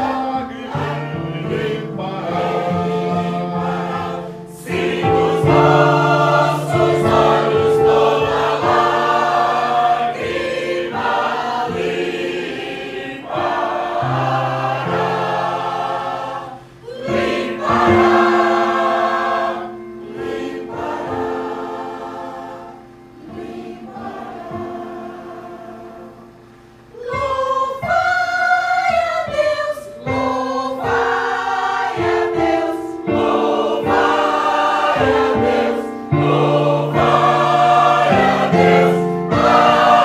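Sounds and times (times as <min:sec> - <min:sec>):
electronic keyboard: 0:00.0 - 0:12.3, 0:29.3 - 0:40.0
choir singing: 0:00.0 - 0:40.0.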